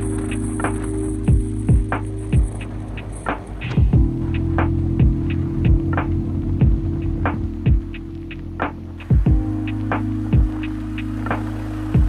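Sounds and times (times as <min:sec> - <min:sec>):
light percussive ticks: 0:00.0 - 0:11.5
steady low drone: 0:00.0 - 0:12.0
deep kick drum hits: 0:01.3 - 0:02.6, 0:03.8 - 0:04.2, 0:05.0 - 0:08.0, 0:09.1 - 0:09.5, 0:10.3 - 0:10.6.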